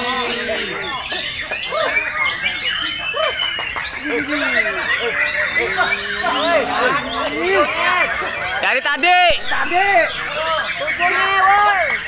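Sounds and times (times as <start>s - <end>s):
other songbirds singing: 0.0s - 12.0s.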